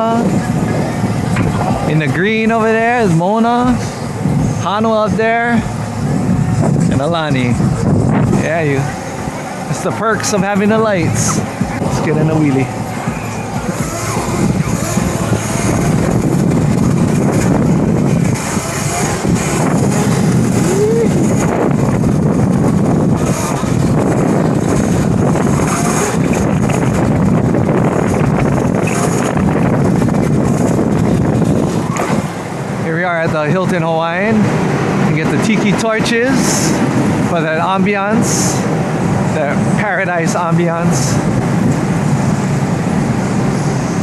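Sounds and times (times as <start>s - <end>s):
bike tyre noise: 0.0s - 44.0s
wind on microphone: 0.0s - 44.0s.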